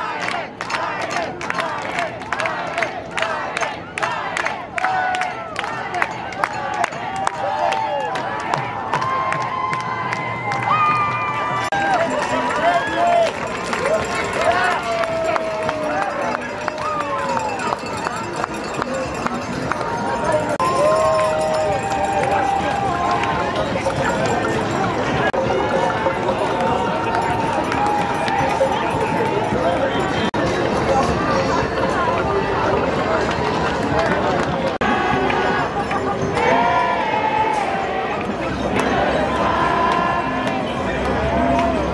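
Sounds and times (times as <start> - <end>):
crowd voices talking and calling: 0.0 - 41.9.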